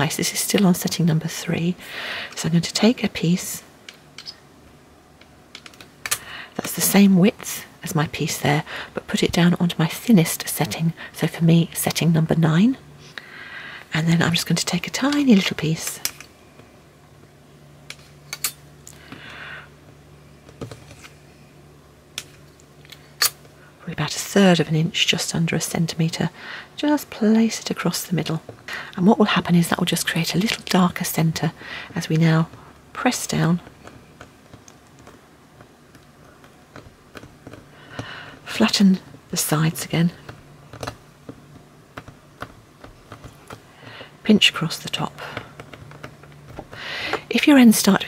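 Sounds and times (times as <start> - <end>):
faint low hum: 0.0 - 48.0.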